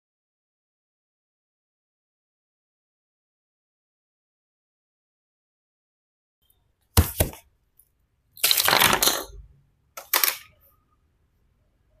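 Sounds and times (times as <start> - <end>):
plastic pieces clattering on desk: 8.4 - 9.4, 10.0 - 10.6.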